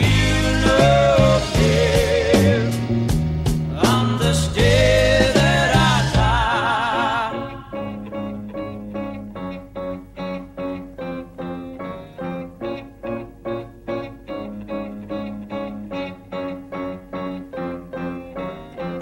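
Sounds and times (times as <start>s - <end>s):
picked guitar line: 0.0s - 19.0s.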